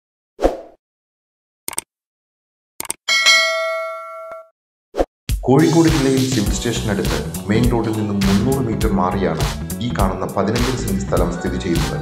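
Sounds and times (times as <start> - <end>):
bright bell ding: 3.1 - 4.5.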